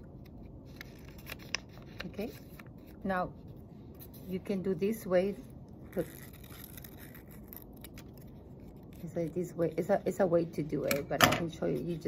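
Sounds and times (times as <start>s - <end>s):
paper rustling: 0.6s - 3.1s
scissors snipping paper: 5.9s - 10.0s.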